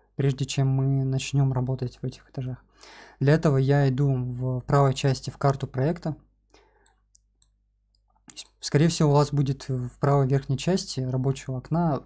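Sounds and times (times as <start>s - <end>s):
person speaking: 0.2s - 6.3s, 8.2s - 12.0s.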